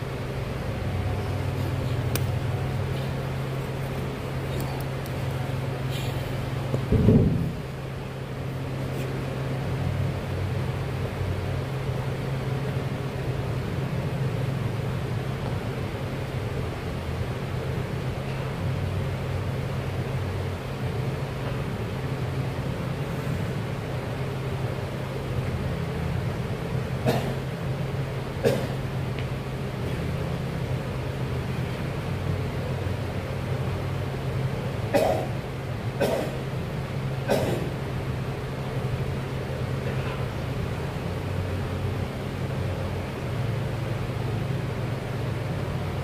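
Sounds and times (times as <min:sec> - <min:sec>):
low mechanical hum: 0:00.0 - 0:46.0.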